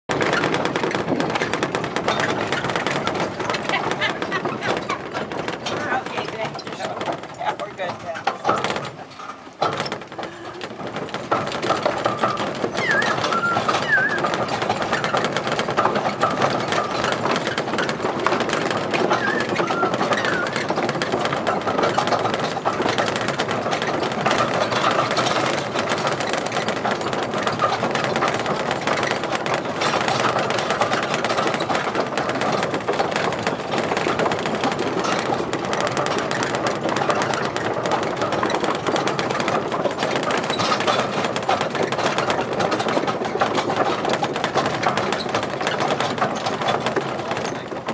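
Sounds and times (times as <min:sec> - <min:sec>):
small train rattling: 0:00.1 - 0:47.9.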